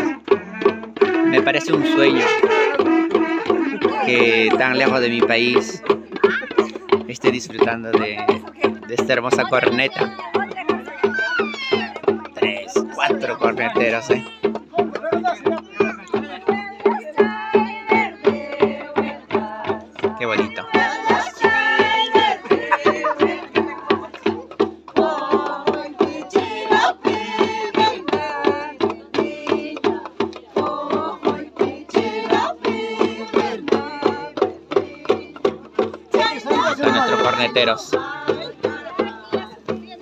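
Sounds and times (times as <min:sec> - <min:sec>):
hand drums beating: 0:00.0 - 0:40.0
women singing: 0:00.0 - 0:40.0
horn trumpets holding low notes: 0:01.0 - 0:03.7.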